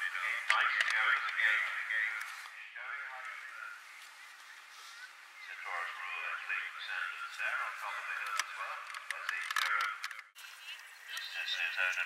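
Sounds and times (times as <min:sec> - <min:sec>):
commentary over radio: 0:00.0 - 0:12.0.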